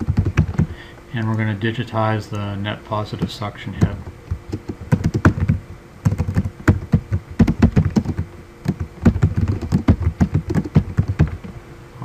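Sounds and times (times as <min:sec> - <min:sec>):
computer keyboard typing: 0:00.0 - 0:00.7, 0:03.2 - 0:11.4.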